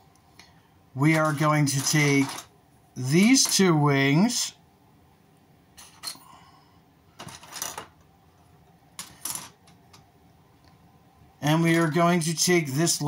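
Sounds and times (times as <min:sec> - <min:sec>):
toy parts clattering on metal: 0:01.2 - 0:02.5, 0:03.2 - 0:03.7, 0:07.2 - 0:08.0, 0:09.0 - 0:09.8.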